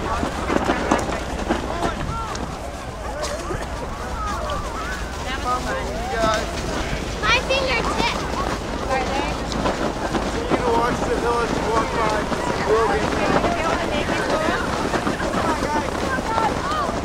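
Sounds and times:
crowd calling and chattering: 0.0 - 17.0
wind buffeting microphone: 0.0 - 17.0.

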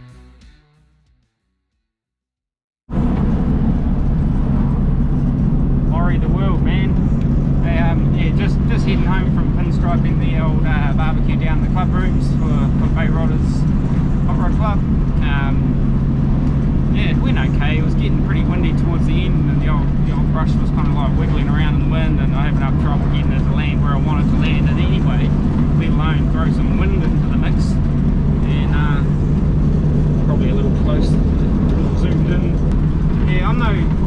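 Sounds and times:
car engine and road noise: 2.9 - 34.0.

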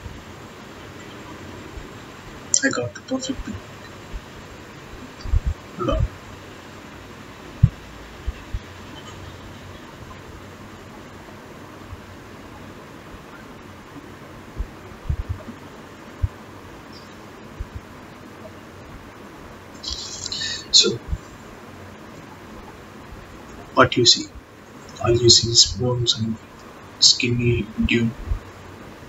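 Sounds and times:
room tone hiss: 0.0 - 29.0.

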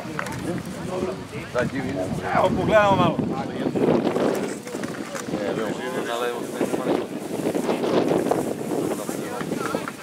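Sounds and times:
people talking and calling out: 0.0 - 10.0
wind noise on microphone: 0.0 - 10.0.

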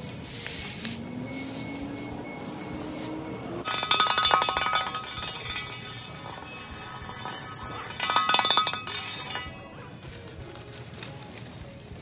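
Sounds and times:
metal tool clattering on concrete: 3.6 - 9.7.

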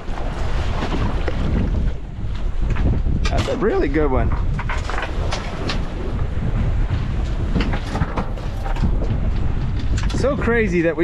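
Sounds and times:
rough sea washing against hull: 0.0 - 11.0
strong wind buffeting microphone: 0.0 - 11.0.

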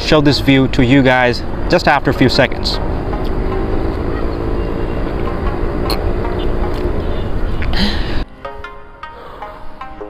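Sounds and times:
faint engine drone: 0.0 - 8.2.

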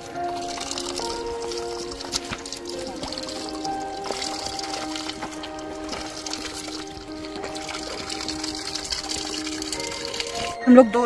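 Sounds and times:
water splashing over stones: 0.0 - 10.6
music of held notes: 0.0 - 11.0.

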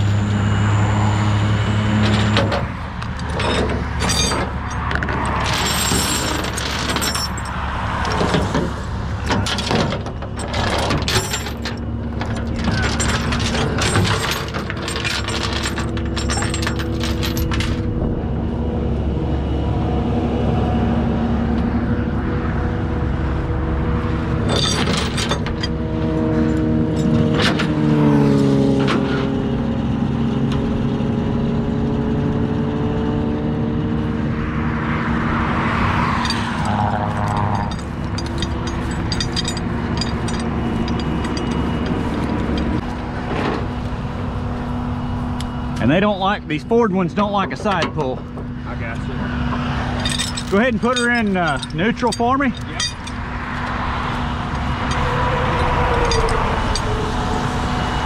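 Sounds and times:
truck engine running: 0.0 - 58.0.

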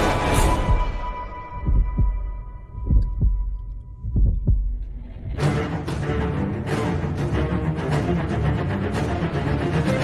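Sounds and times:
trailer music: 0.0 - 10.0
heartbeat-like double thumps: 0.4 - 5.3.

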